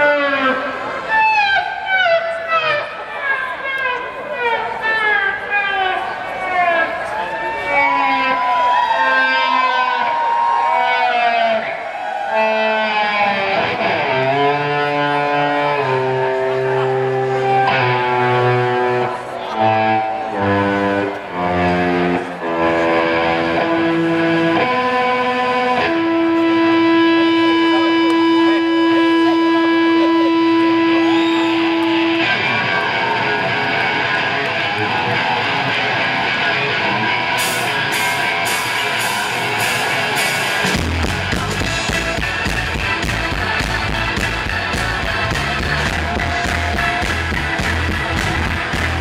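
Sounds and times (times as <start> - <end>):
bass guitar: 0.0 - 49.0
electric guitar blues solo: 0.0 - 49.0.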